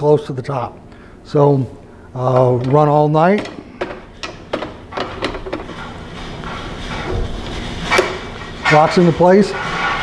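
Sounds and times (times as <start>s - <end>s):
sliding rub: 5.6s - 10.0s.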